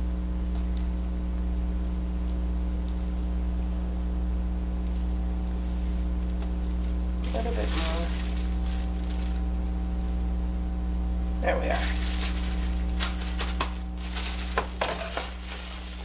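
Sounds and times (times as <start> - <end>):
steady low hum: 0.0 - 16.0
plastic bag crinkling: 6.4 - 9.6, 11.6 - 16.0.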